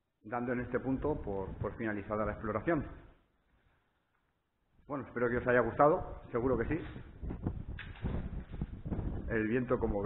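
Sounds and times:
wind buffeting microphone: 1.0 - 2.6, 5.6 - 10.0.

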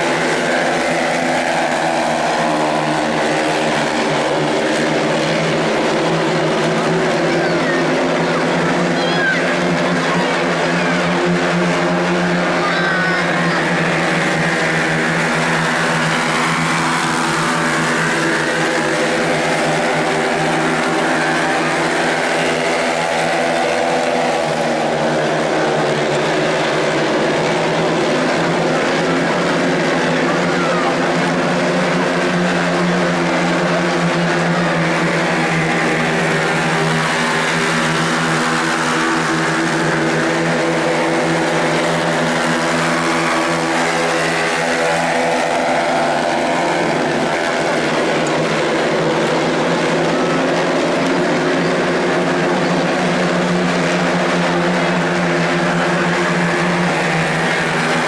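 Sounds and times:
race car engines at high revs: 0.0 - 58.0.

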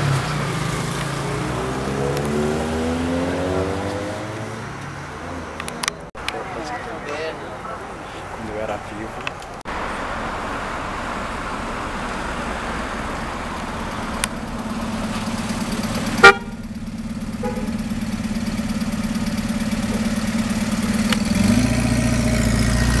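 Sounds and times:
approaching car engine: 0.0 - 23.0
vehicle engines running: 0.0 - 23.0
car horn toot: 16.0 - 18.2.

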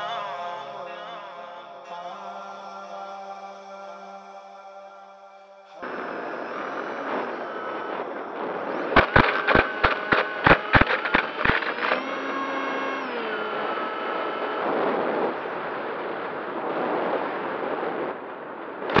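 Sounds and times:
small motor whining: 5.8 - 16.4.

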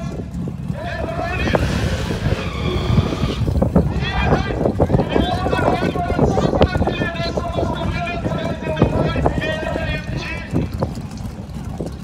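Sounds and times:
drag car engine running: 0.0 - 12.0
low rumble: 0.0 - 12.0
tyres squealing: 1.3 - 3.5.

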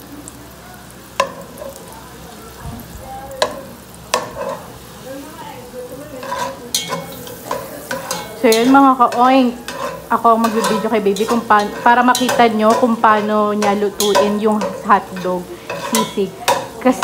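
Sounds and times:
butter sizzling in a pot: 0.0 - 17.0
metal spatula scraping a pot: 4.2 - 4.7, 6.2 - 17.0.

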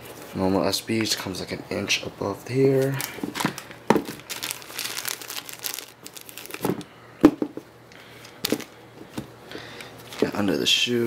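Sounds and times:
plastic bag crinkling: 2.8 - 6.9.

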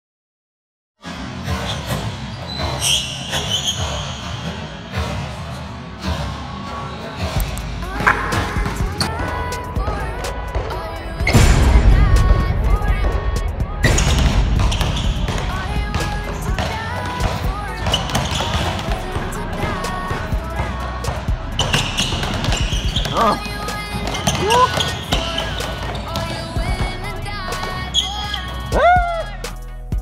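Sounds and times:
heavy bass: 4.9 - 30.0
music with vocal line: 4.9 - 30.0
basketball dribbled on gym floor: 7.4 - 11.5, 13.8 - 27.0.

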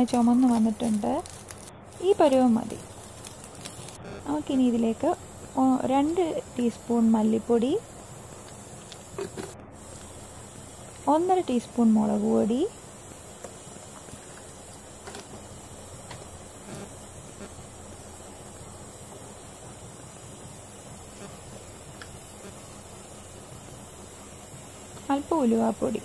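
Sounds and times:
faint sizzle in a pan: 0.0 - 26.0.

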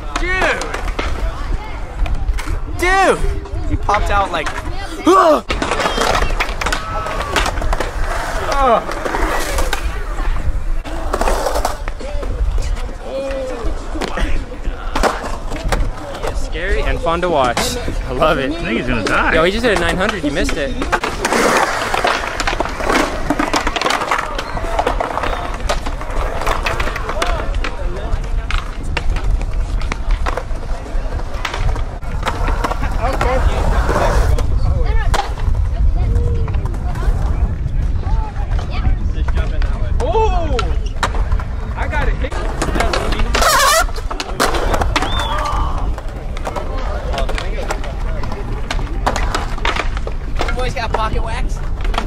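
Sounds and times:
skateboard clacking on ground: 0.0 - 37.8, 38.4 - 52.0
skateboard wheels rolling on concrete: 0.0 - 52.0.

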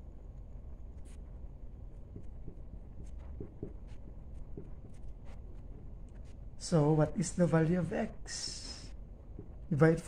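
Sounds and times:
low steady hum: 0.0 - 10.0
marker pen scratching strokes: 0.9 - 6.5.

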